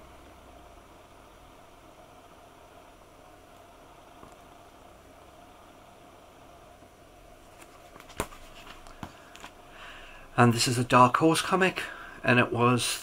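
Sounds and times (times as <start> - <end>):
low hum: 0.0 - 7.8
faint steady hiss: 0.0 - 13.0.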